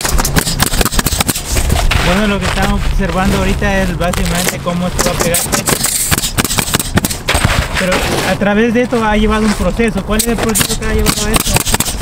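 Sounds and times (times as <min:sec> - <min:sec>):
nail gun firing: 0:00.0 - 0:01.6, 0:05.0 - 0:07.7, 0:10.2 - 0:12.0.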